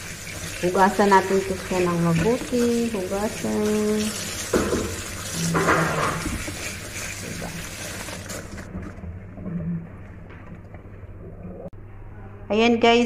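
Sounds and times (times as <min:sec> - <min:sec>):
tap water running on leaves: 0:00.0 - 0:08.7.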